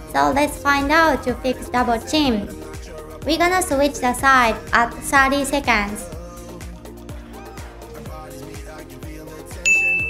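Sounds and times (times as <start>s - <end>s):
background music with beat: 0.0s - 10.0s
bright ding: 9.7s - 10.0s.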